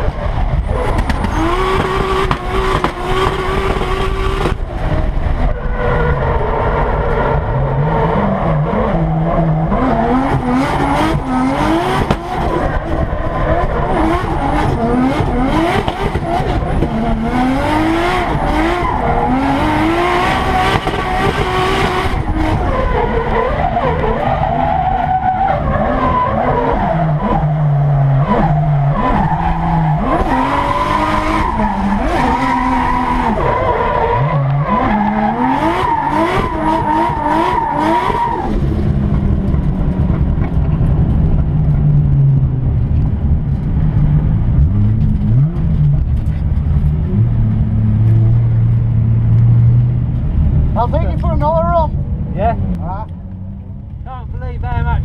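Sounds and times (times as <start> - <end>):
car engine revving: 0.0 - 55.0
engine low rumble: 38.5 - 55.0.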